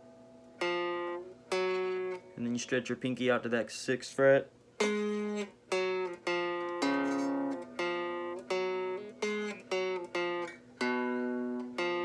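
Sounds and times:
guitar notes ringing: 0.0 - 3.6, 4.8 - 12.0.

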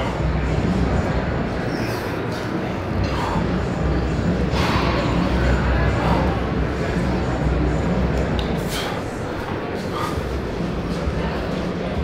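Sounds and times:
murmuring voices: 0.0 - 12.0.

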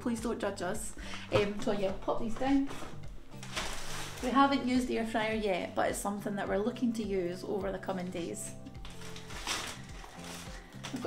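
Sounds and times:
quiet background music: 0.0 - 11.0
plastic bag rustling: 1.1 - 5.1, 8.3 - 11.0.

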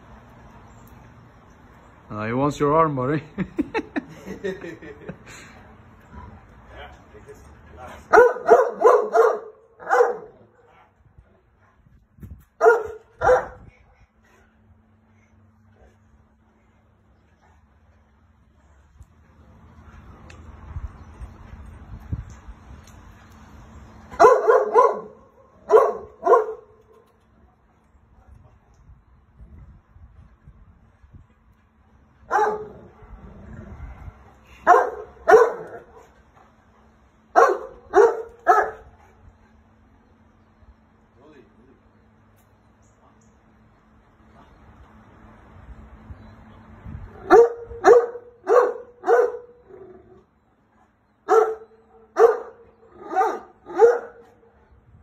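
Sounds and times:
large dog barking: 8.0 - 10.8, 12.6 - 13.7, 24.1 - 26.8, 32.3 - 33.2, 34.6 - 36.2, 37.3 - 39.2, 47.2 - 50.0, 51.2 - 54.5.

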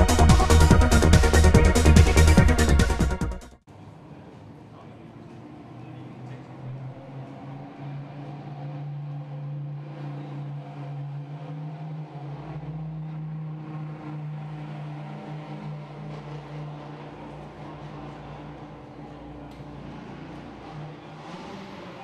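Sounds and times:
deep rumble: 0.0 - 3.4
engine humming: 0.0 - 22.0.

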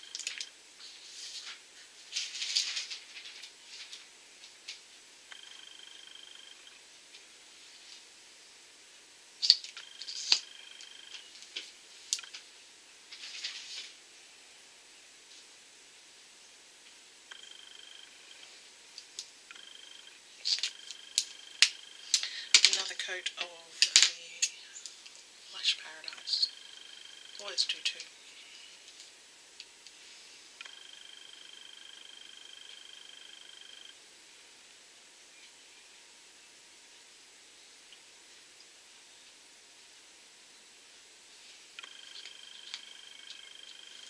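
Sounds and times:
faint high steady tone: 5.3 - 7.0, 9.4 - 15.2, 17.2 - 28.9, 30.0 - 34.0, 41.4 - 44.0
soft hissing bursts: 29.9 - 30.6.

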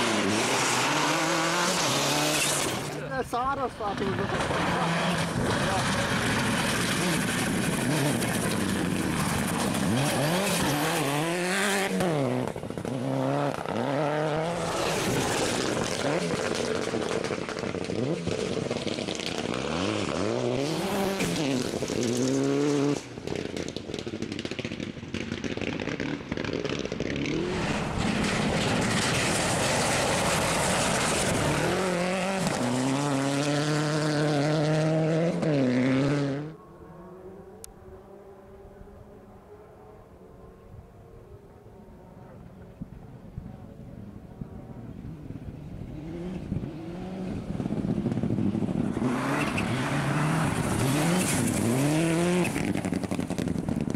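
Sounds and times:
rally car engines revving: 0.0 - 42.9, 43.5 - 53.9.

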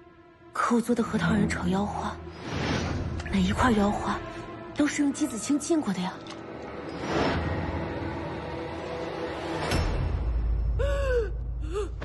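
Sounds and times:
woman gasping and crying out: 10.7 - 12.0.

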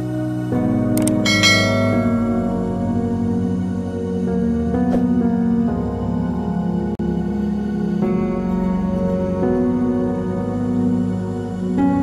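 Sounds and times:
soft background music: 0.0 - 12.0
click: 1.0 - 1.2
bright bell chime: 1.2 - 2.9.

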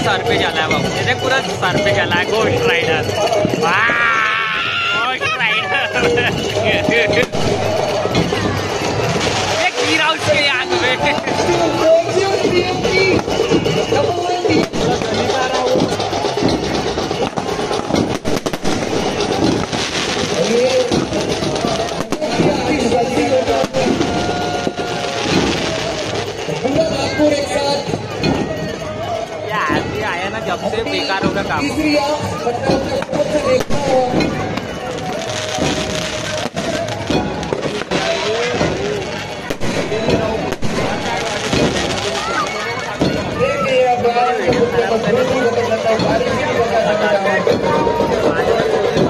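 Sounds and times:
fireworks going off: 0.0 - 49.0.

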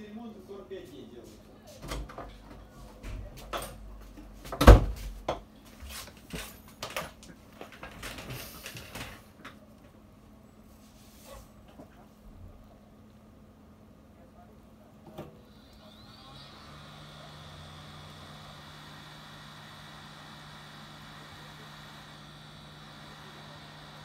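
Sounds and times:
objects clattering on a workbench: 3.4 - 9.6.

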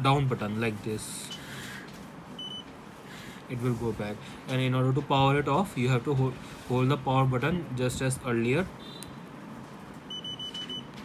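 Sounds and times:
short high beeps: 10.1 - 10.9.

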